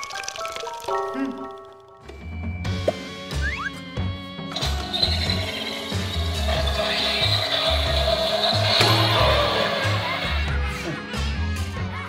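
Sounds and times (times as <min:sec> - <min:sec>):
electric blender whirring: 0:04.6 - 0:10.4.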